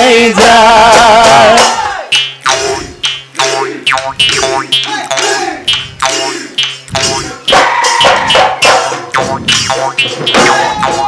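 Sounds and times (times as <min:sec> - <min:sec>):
jaw harp twanging: 0:02.1 - 0:11.0.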